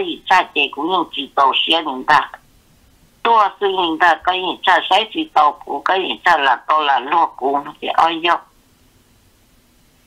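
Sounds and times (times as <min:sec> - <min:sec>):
person talking in telephone-like voice: 0:00.0 - 0:02.4, 0:03.3 - 0:08.5.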